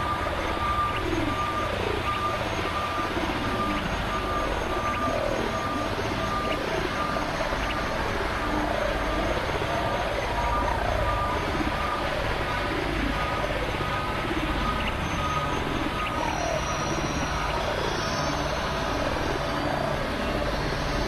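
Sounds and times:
noisy synth drone with rumble: 0:00.0 - 0:21.0.

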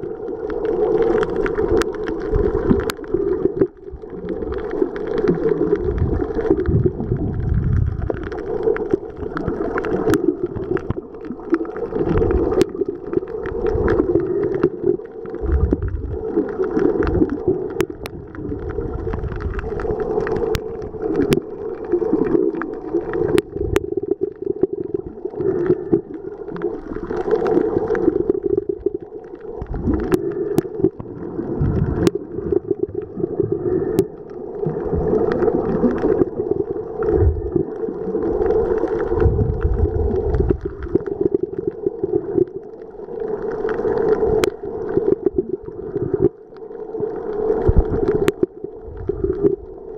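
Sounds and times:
muffled churning water underwater: 0:00.0 - 0:49.9.

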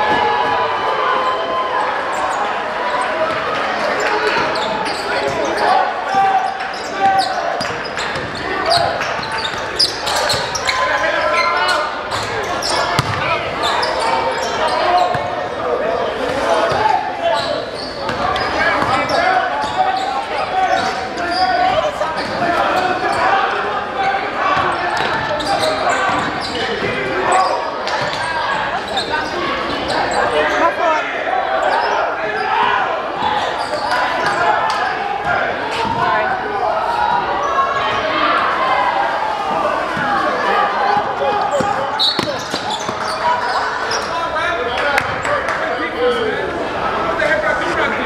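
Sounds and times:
voices talking and shouting: 0:00.0 - 0:48.0
basketball bouncing on hardwood: 0:13.0 - 0:13.2.

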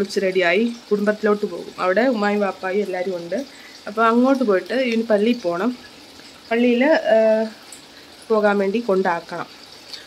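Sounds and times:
person talking: 0:00.0 - 0:05.8, 0:06.5 - 0:07.6, 0:08.3 - 0:09.5.

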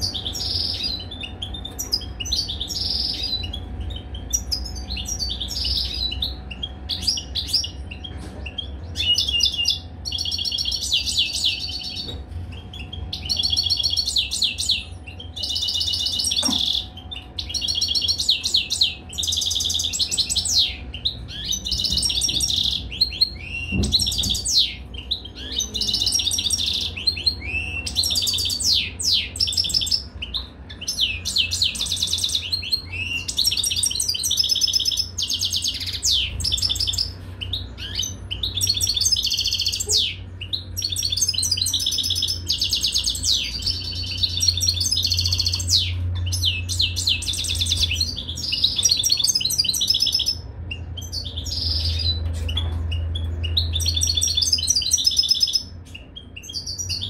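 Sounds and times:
finch twittering song: 0:00.0 - 0:57.0.

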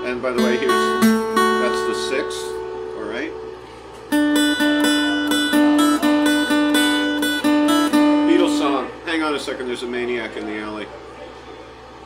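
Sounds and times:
acoustic guitar picking: 0:00.0 - 0:09.2.

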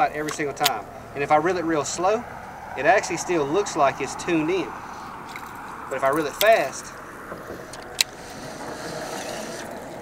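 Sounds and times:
fishing reel whirring: 0:07.7 - 0:10.0.

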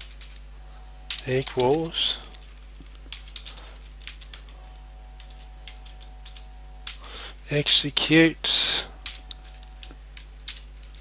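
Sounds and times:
computer keyboard typing: 0:00.0 - 0:00.4, 0:01.1 - 0:07.0
steady low hum: 0:00.0 - 0:11.0.

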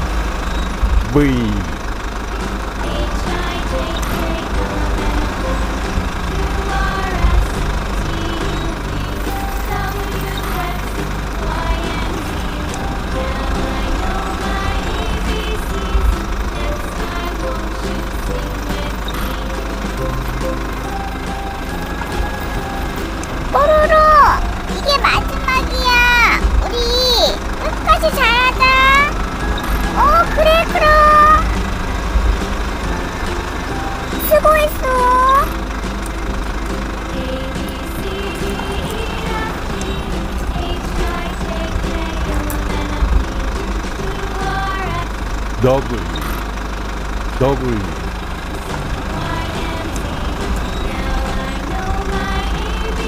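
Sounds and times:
bulldozer engine rumble: 0:00.0 - 0:53.0
background music: 0:01.0 - 0:53.0
high-pitched sliding voice sounds: 0:23.5 - 0:29.2, 0:29.9 - 0:31.6, 0:34.2 - 0:35.6.

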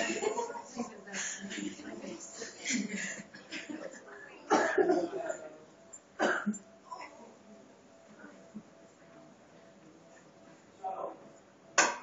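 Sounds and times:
person coughing: 0:04.5 - 0:05.4, 0:06.2 - 0:07.2.

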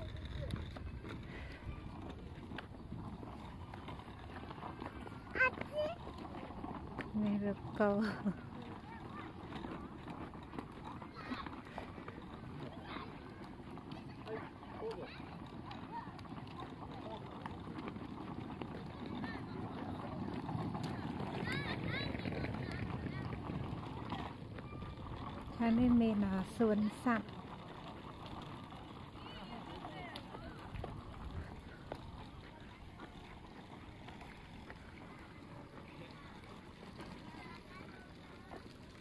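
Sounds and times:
faint background voices: 0:28.0 - 0:39.0.

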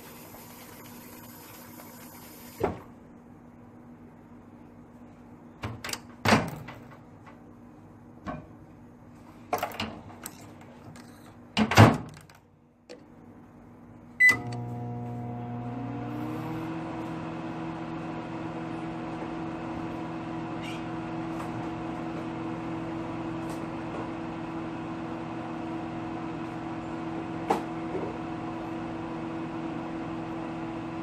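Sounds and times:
microwave oven humming: 0:00.0 - 0:04.8, 0:13.3 - 0:31.0
microwave keypad beep: 0:14.2 - 0:14.6.

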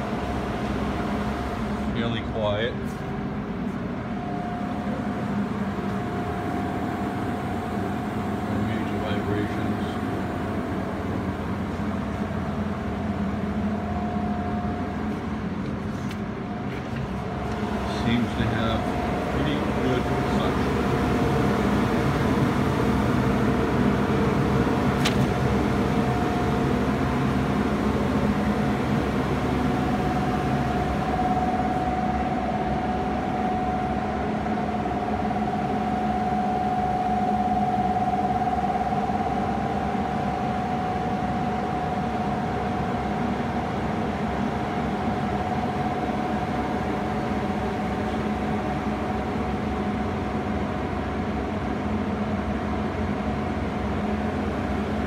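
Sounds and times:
extraction blower humming: 0:00.0 - 0:51.5
high whine: 0:00.0 - 0:55.0.

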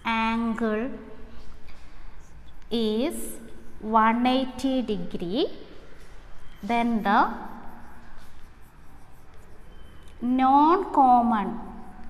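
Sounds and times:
chalk scratching on chalkboard: 0:06.4 - 0:12.0.

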